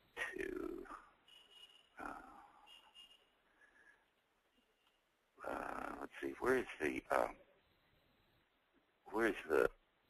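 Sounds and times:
man saying uh: 0:05.4 - 0:07.4, 0:09.1 - 0:09.7.

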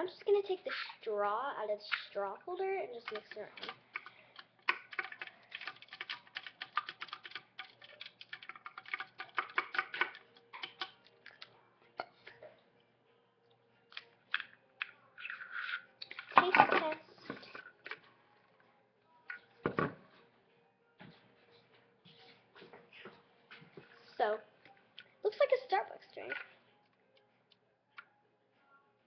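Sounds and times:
straw clicking against cup: 0:03.0 - 0:12.1.

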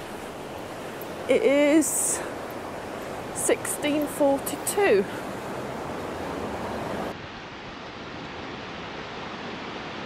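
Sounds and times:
river running over rocks: 0:00.0 - 0:10.0.

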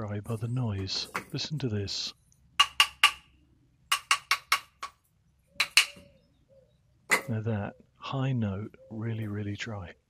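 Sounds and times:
dry wooden sticks clacking: 0:02.6 - 0:03.3, 0:03.9 - 0:06.1.

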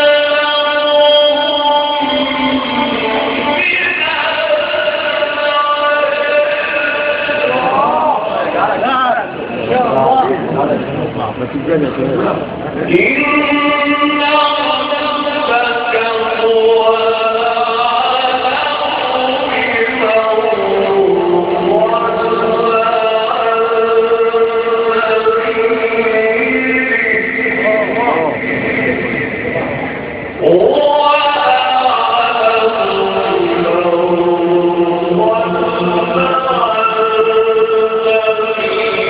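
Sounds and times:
man chanting through a microphone: 0:00.0 - 0:39.0.

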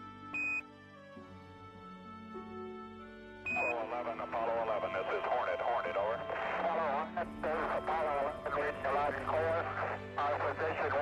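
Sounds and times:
background music: 0:00.0 - 0:11.0
voices over radio: 0:03.5 - 0:11.0.

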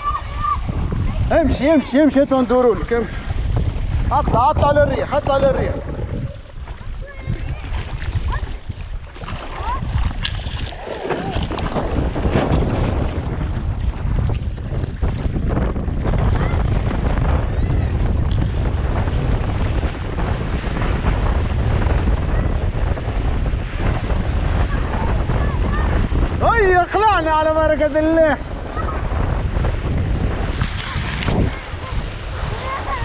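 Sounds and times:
water rushing and spraying: 0:00.0 - 0:33.0
wind buffeting microphone: 0:00.0 - 0:33.0.

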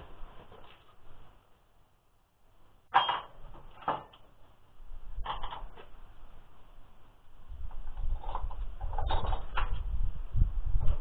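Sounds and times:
knocks and clatters of objects: 0:02.9 - 0:04.4, 0:05.2 - 0:06.0, 0:07.7 - 0:09.9.

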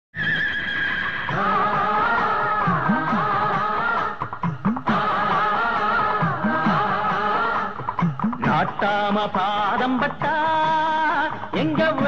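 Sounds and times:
horse whinnying: 0:00.2 - 0:01.6.

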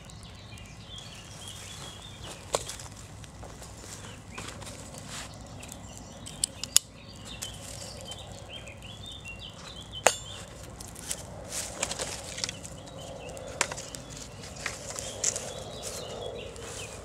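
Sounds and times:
birds chirping faintly: 0:00.0 - 0:17.0
wood fire crackling: 0:00.0 - 0:17.0
sharp snaps and clicks: 0:05.0 - 0:15.6
handling of camping kit: 0:10.0 - 0:15.5.

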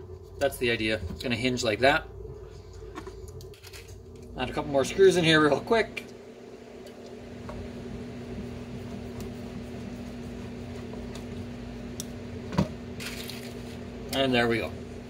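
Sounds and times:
steady hum: 0:00.0 - 0:15.0.

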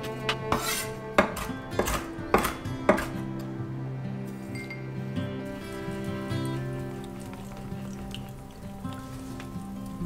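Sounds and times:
background music: 0:00.0 - 0:10.0
knife chopping on wooden board: 0:00.3 - 0:03.2.

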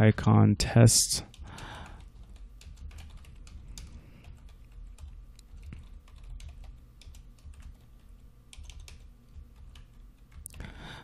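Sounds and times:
steady low hum: 0:00.0 - 0:11.0
computer keyboard typing: 0:01.3 - 0:10.8.

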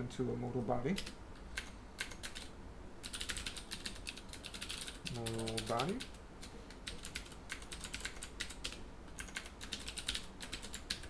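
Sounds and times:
typing on computer keyboard: 0:01.0 - 0:11.0.

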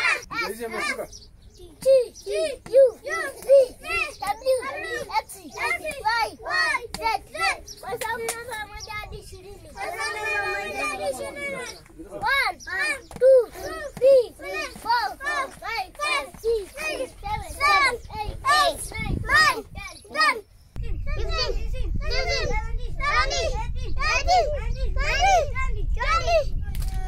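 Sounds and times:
children chanting together: 0:00.0 - 0:26.5.

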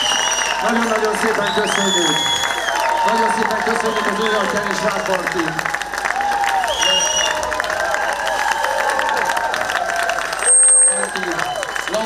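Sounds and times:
audience clapping and cheering: 0:00.0 - 0:12.0.

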